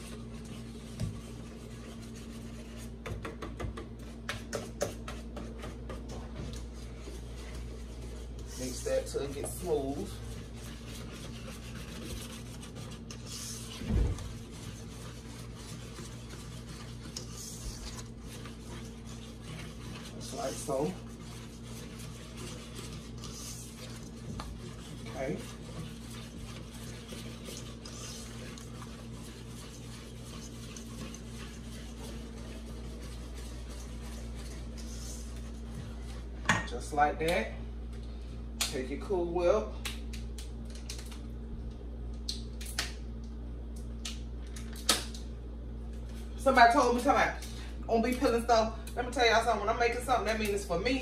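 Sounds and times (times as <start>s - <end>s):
spatula scraping metal bowl: 0.0s - 3.3s, 6.8s - 36.4s
steady low hum: 0.0s - 51.0s.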